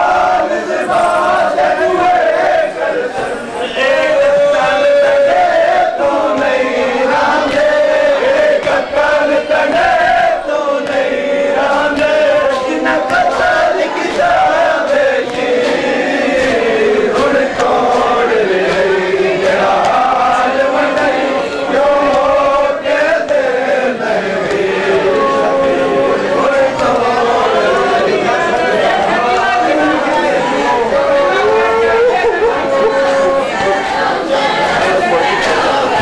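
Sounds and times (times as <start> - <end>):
crowd of men chanting: 0.0 - 36.0.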